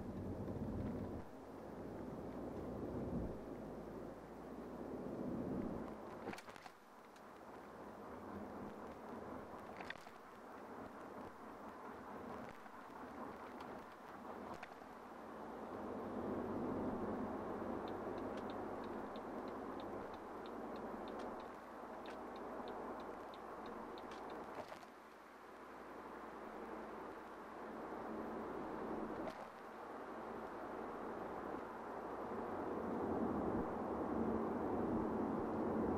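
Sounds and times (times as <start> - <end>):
road and tyre noise in car: 0.0 - 35.9.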